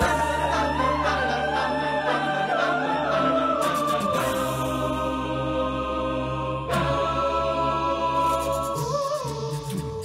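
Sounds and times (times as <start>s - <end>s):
a cappella choir singing: 0.0s - 10.0s.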